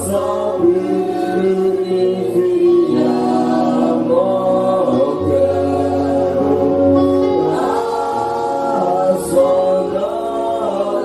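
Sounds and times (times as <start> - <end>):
congregation singing: 0.0 - 11.0
man singing into microphone: 0.0 - 11.0.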